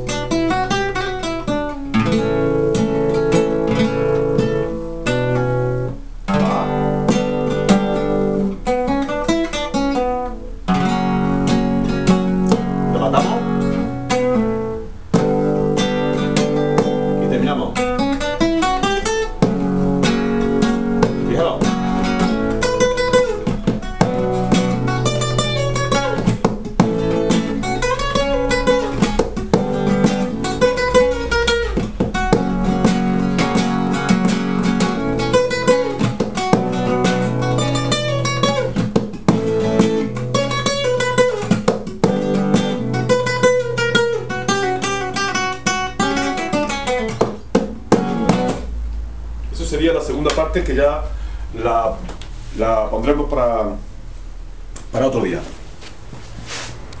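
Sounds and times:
guitar strumming and picking: 0.0 - 52.3.

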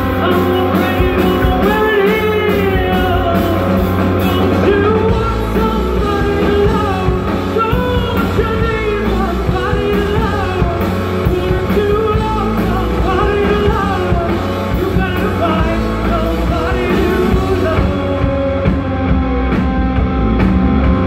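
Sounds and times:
bass guitar: 0.0 - 21.0
drums: 0.0 - 21.0
electric guitar: 0.0 - 21.0.

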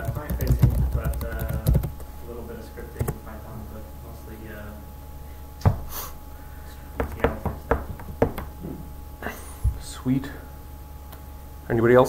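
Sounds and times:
laptop keystrokes: 0.0 - 2.0
steady room hum: 0.0 - 12.0.

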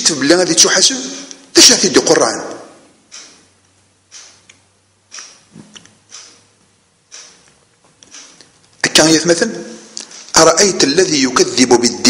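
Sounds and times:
faint clicks: 4.1 - 6.5, 7.1 - 8.8.

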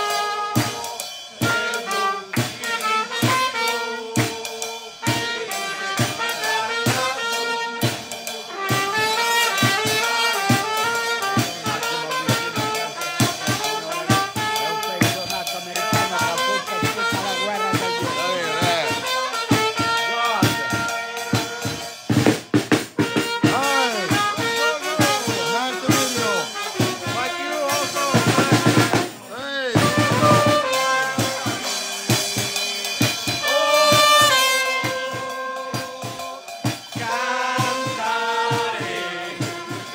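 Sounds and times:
drum kit beat: 0.0 - 39.9
trumpets playing melody: 0.0 - 39.9.

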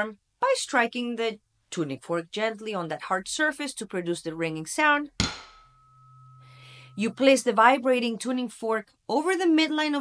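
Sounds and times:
low steady hum: 4.2 - 9.1
tuning fork knock: 5.2 - 7.4
tuning fork ringing high tone: 5.5 - 7.5.

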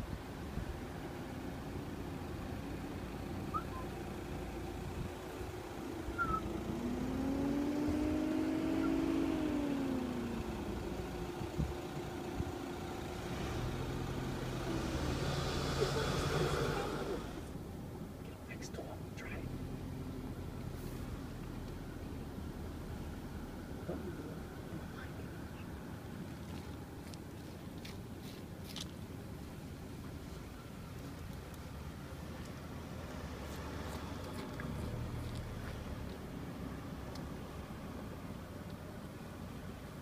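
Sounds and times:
car engine: 0.0 - 40.0
road noise: 0.0 - 40.0.

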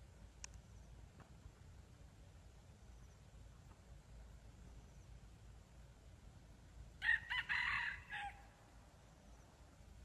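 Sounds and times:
rooster crowing: 7.0 - 8.4.

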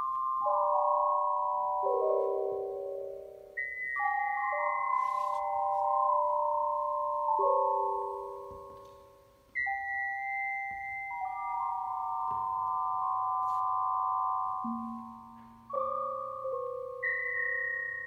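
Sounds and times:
electronic keyboard bell-like chords: 0.0 - 18.0.

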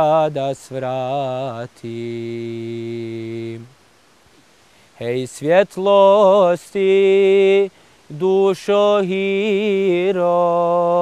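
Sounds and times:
man singing long note: 5.0 - 11.0.

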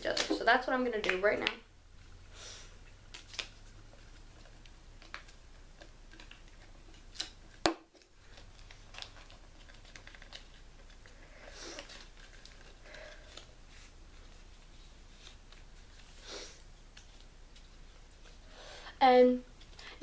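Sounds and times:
soft paper rustle: 3.1 - 18.4.

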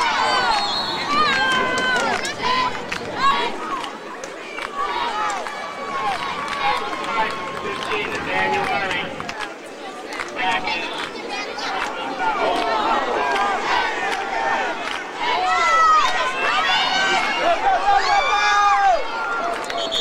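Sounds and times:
crowd shouting and cheering: 0.0 - 20.0.

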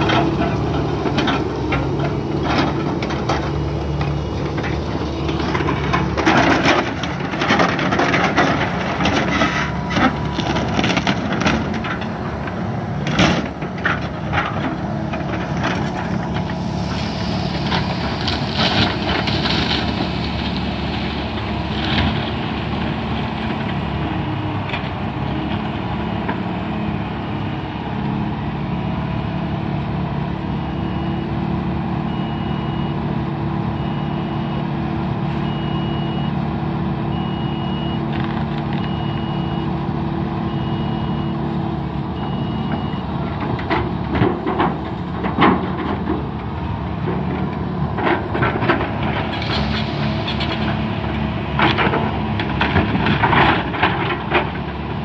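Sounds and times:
truck reversing beeper: 0.0 - 12.1, 28.8 - 43.4
diesel engines running: 0.0 - 55.0.

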